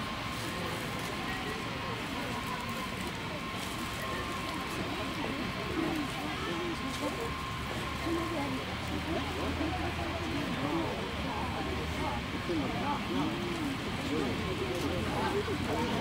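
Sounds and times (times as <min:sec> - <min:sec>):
city background noise: 0:00.0 - 0:16.0
distant people talking: 0:00.0 - 0:16.0.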